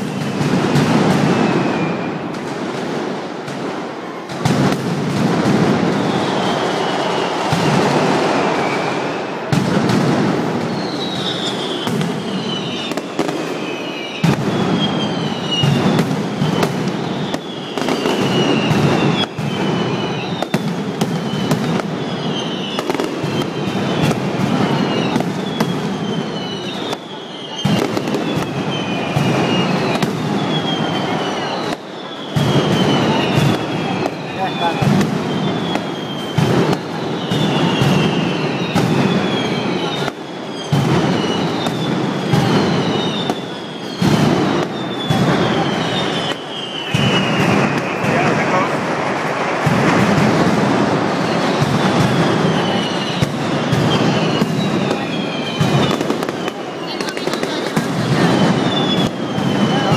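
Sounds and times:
high falling whistles: 0.0s - 2.4s, 5.7s - 9.6s, 10.5s - 59.9s
firecrackers banging: 0.0s - 59.9s.

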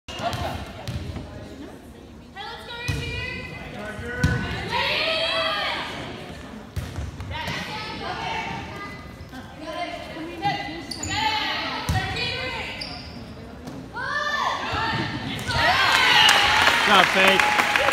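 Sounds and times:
crowd cheering: 15.5s - 17.9s.

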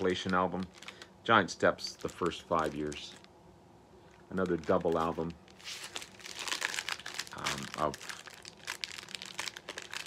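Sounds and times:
record sleeve crinkling: 0.0s - 3.3s, 4.0s - 10.0s.

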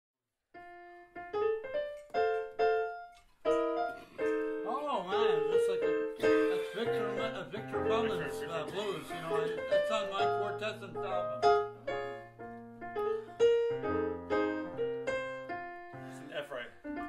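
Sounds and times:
person speaking: 4.5s - 11.8s, 16.0s - 17.0s.

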